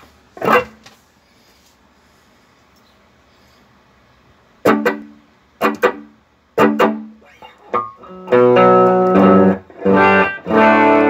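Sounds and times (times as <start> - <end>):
faint hiss: 0.0 - 6.6
guitar chords strummed: 0.4 - 0.8, 4.6 - 11.0.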